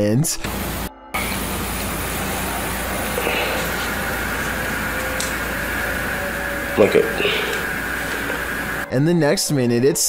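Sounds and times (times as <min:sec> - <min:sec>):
faint thin whines: 0:00.5 - 0:08.9
steady grinding noise: 0:00.5 - 0:08.9.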